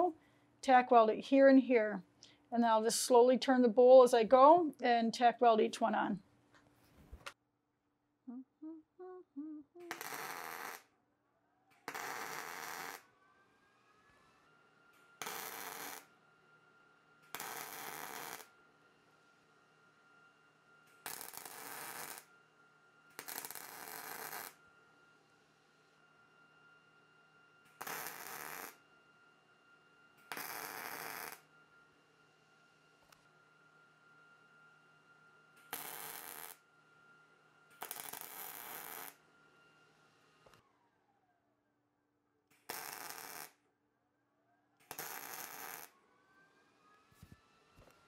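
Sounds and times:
faint steady hum: 8.3 - 10.5
welding arc crackle: 9.9 - 10.8, 11.9 - 13.0, 15.2 - 16.1, 17.3 - 18.5, 20.9 - 22.3, 23.2 - 24.6, 27.8 - 28.8, 30.3 - 31.4, 35.7 - 36.6, 37.8 - 39.2, 42.6 - 43.6, 44.9 - 45.9.

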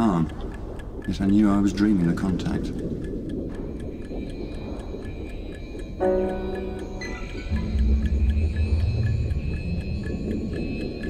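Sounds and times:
clock-like ticking: 0.0 - 11.0
low rumbling drone: 3.7 - 11.0
faint high sustained tones: 4.6 - 11.0.

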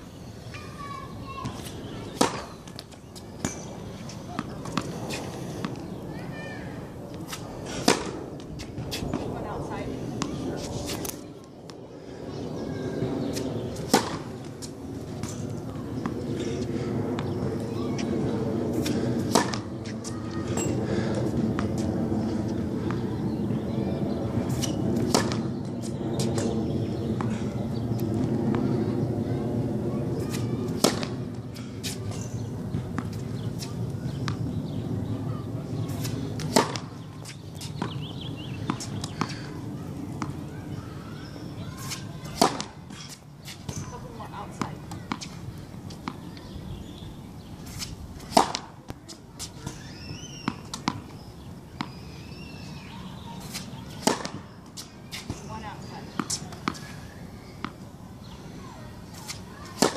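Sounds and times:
tennis racket hitting ball: 1.5 - 2.5, 7.3 - 9.2, 13.8 - 15.4, 18.7 - 20.7, 24.5 - 25.5, 30.3 - 31.2, 35.8 - 39.4, 41.8 - 46.3, 47.7 - 49.8, 53.4 - 56.9, 59.1 - 59.9.

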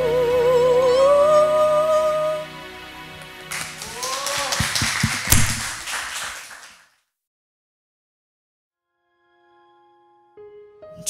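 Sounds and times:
audience applauding: 3.4 - 7.0
vocal cheer: 3.7 - 4.9.

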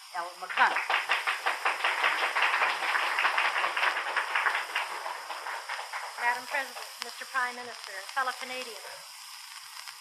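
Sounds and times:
old radio recording hiss: 0.0 - 10.0
audience applauding: 0.4 - 7.0.

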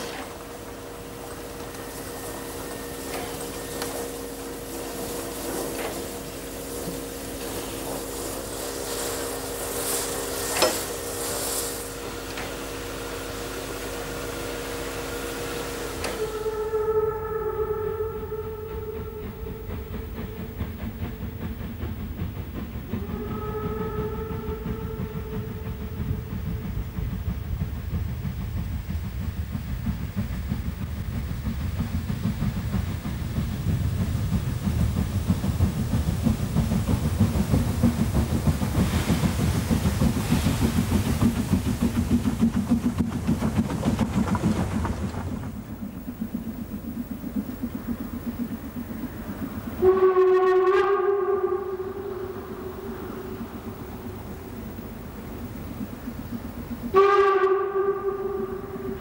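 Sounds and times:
steam whistle blasts: 0.0 - 20.2, 22.9 - 26.3, 49.8 - 53.3, 56.8 - 59.0
steam locomotive exhaust beats: 0.0 - 59.0.

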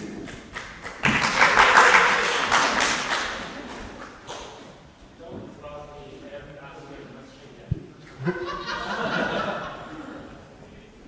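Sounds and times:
audience applause: 0.8 - 3.8.

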